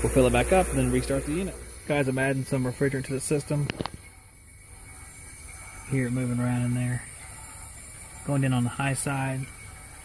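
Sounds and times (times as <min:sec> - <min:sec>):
refrigerant hissing: 0:00.0 - 0:10.0.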